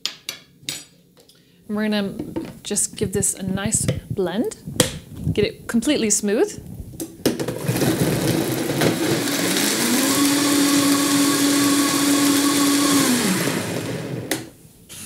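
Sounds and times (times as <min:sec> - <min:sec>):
blender motor whining: 0:07.6 - 0:14.5.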